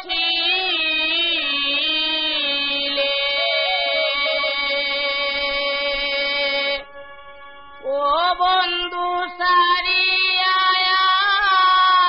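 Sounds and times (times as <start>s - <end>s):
harmonium chords: 0.0s - 12.0s.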